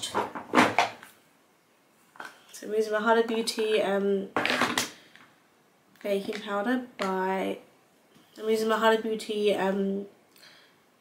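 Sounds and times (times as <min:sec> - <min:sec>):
makeup containers clattering: 0:04.4 - 0:05.0.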